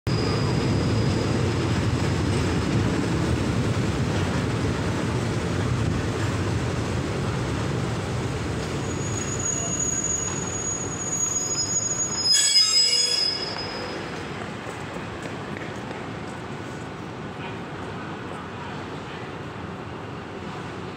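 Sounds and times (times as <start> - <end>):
train brakes squealing: 0.1 - 1.6, 8.7 - 14.3
passenger train rumbling: 0.1 - 20.9.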